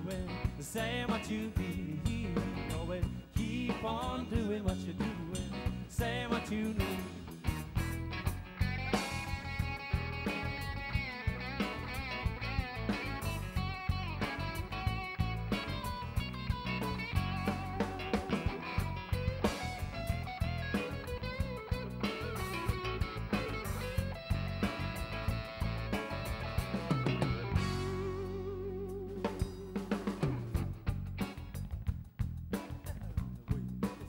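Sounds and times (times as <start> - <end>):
electric keyboard: 0.0 - 31.8
electric guitar: 0.0 - 32.0
bass guitar: 0.0 - 34.0
drum beat: 9.1 - 28.2, 29.1 - 34.0.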